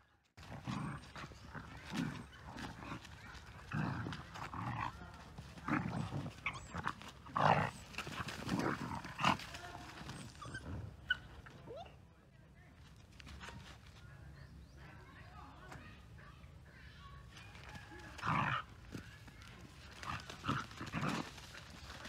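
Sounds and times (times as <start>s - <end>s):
dogs growling: 0.4s - 11.2s, 17.5s - 22.0s
dogs scuffling: 0.4s - 11.5s, 17.3s - 22.0s.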